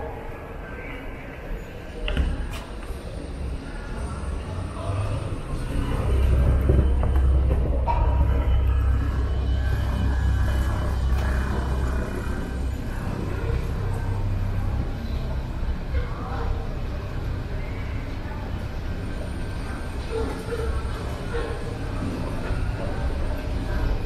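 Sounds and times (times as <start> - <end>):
indistinct voices: 0.0 - 24.0
escalator low rumble: 2.8 - 24.0.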